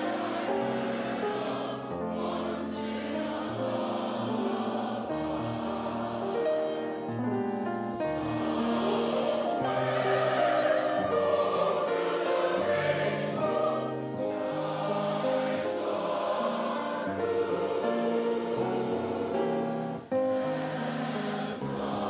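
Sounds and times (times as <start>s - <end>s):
choir singing held chords: 0.0s - 22.0s.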